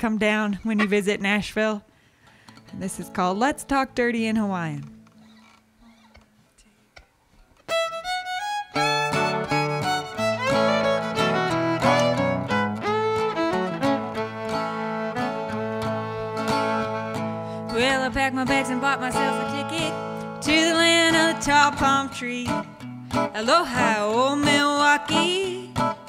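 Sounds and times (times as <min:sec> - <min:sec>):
guitar playing: 0:02.6 - 0:05.2, 0:07.6 - 0:26.0
fiddle playing: 0:07.6 - 0:22.0.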